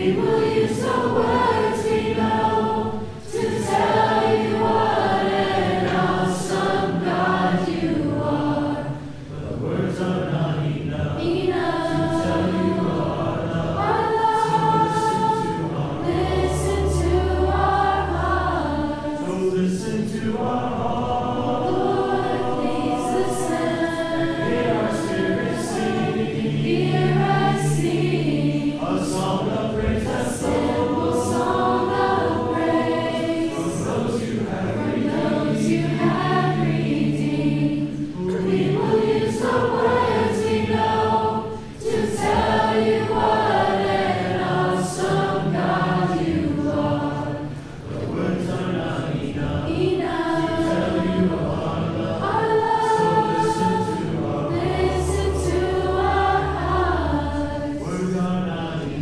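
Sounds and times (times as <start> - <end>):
group singing worship song: 0.0 - 59.0.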